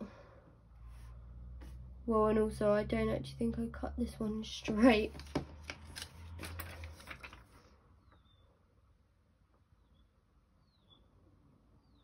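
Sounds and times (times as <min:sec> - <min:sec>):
plastic pouch rustling and tapping: 0:04.7 - 0:07.5
faint bird chirps: 0:08.0 - 0:08.6, 0:09.8 - 0:11.2.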